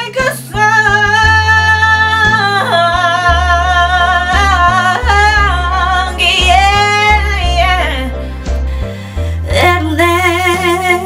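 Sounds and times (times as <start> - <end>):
backing music with bass line: 0.0 - 11.0
woman singing soul: 0.0 - 11.0.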